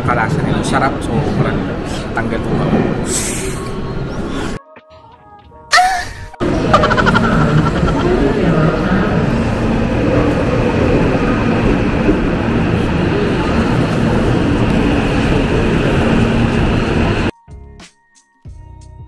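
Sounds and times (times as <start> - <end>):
wavering high tones: 6.3 - 9.0
low hum: 6.4 - 11.4.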